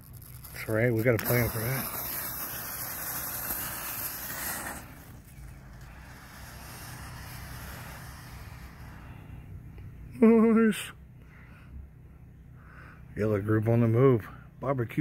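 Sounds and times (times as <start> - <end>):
fuse sparking with a hiss: 0.0 - 9.5
smoke venting hiss: 0.0 - 9.8.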